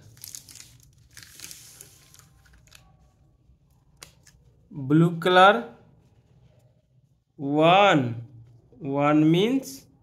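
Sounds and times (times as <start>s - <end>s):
man speaking: 4.7s - 5.8s, 7.4s - 10.0s.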